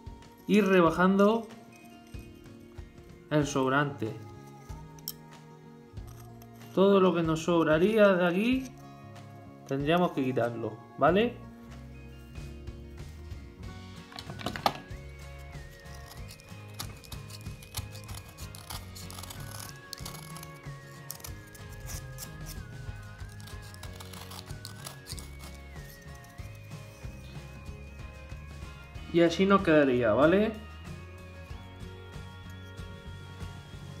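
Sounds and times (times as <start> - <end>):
background music: 0.0 - 34.0
utility knife shaving foam: 14.9 - 29.0.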